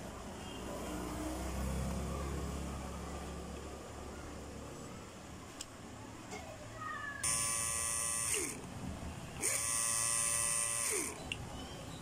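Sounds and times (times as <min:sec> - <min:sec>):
mini drill motor whining: 0:07.2 - 0:08.7, 0:09.4 - 0:11.3.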